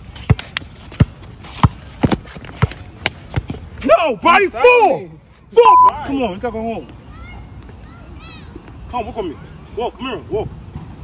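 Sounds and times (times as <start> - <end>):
basketball bouncing on asphalt: 0.0 - 3.8.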